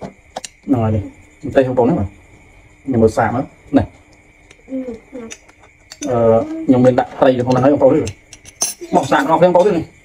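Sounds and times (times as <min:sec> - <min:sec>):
metal spoon clinking on ceramic bowl: 0:07.5 - 0:09.4.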